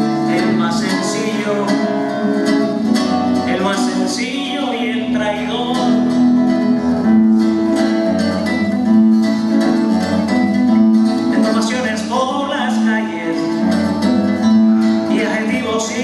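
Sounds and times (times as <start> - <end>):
acoustic guitar plucked notes: 0.0 - 16.0.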